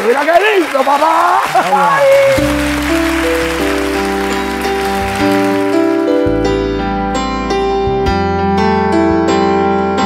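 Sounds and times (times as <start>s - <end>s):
piano playing slow chords: 2.3s - 10.0s.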